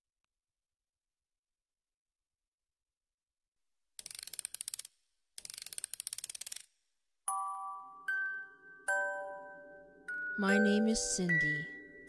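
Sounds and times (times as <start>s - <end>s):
rapid ratchet clicking: 4.0s - 6.7s.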